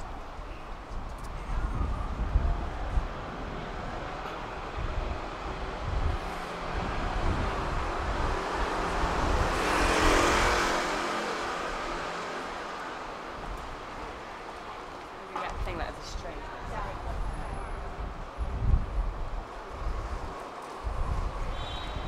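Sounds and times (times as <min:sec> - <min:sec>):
car passing: 0:04.6 - 0:14.1.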